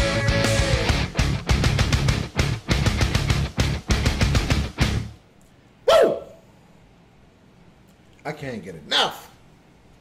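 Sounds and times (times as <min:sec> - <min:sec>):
music: 0:00.0 - 0:05.2.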